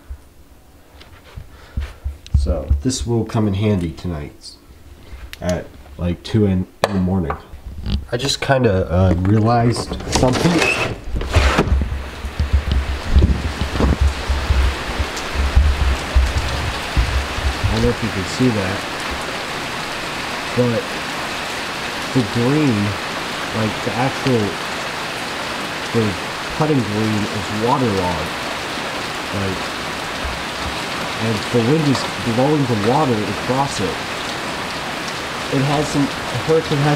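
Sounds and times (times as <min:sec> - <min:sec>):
heavy rain pouring: 0:07.8 - 0:36.9
wind gusting across microphone: 0:08.9 - 0:36.9.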